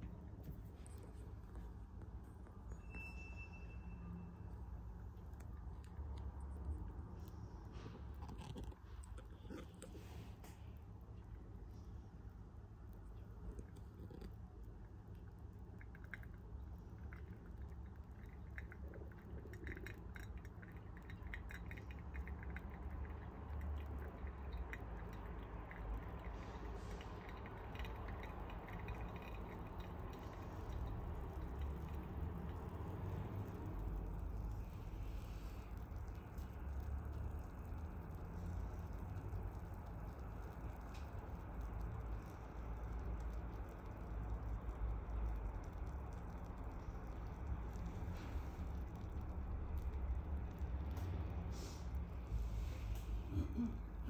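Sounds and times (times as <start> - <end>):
steady low rumble: 4.7 - 54.0
bubbles crackling in coffee grounds: 5.0 - 54.0.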